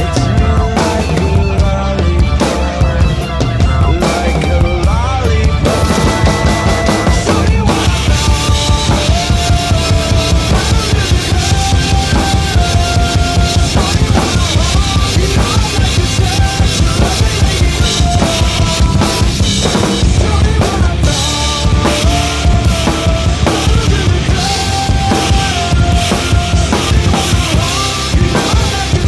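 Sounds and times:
drum kit playing fast beat: 0.0 - 29.0
recorded rock track: 0.0 - 29.0.

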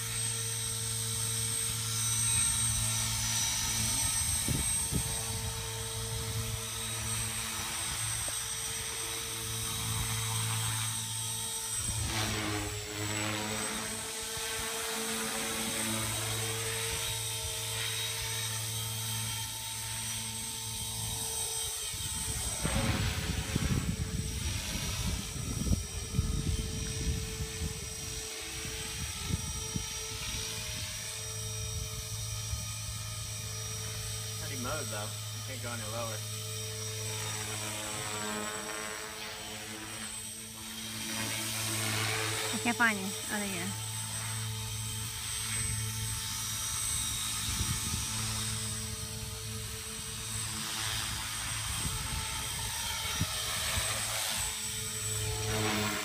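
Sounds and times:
rc helicopter motor whine: 0.0 - 56.0.

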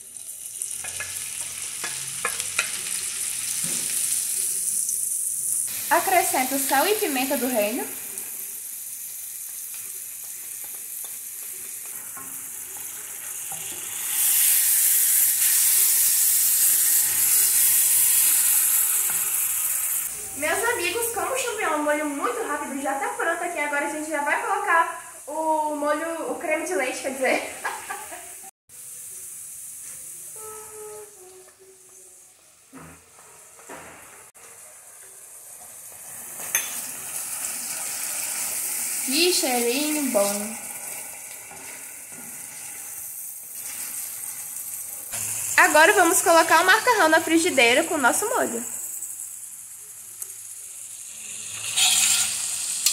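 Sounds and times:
mushrooms sizzling in a skillet: 0.0 - 32.3, 34.2 - 52.9.

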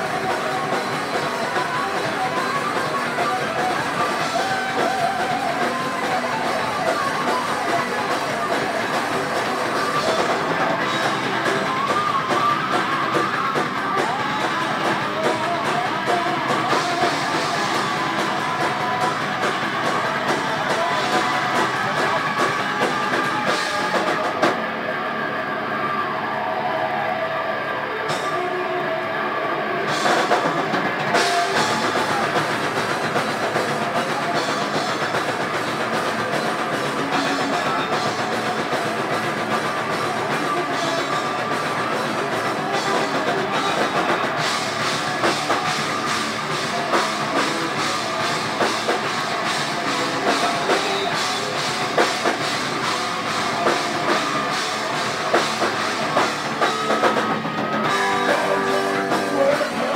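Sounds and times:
drum kit playing: 0.0 - 26.0, 27.9 - 59.9
distorted electric guitar: 0.0 - 59.9.

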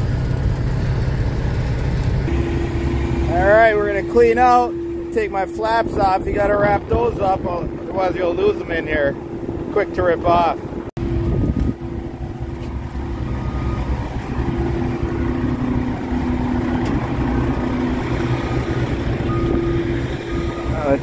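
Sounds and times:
diesel trucks idling: 0.0 - 21.0.

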